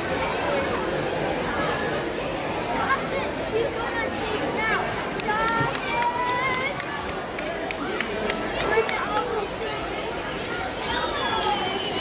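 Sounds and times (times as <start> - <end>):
children calling and chattering: 0.0 - 12.0.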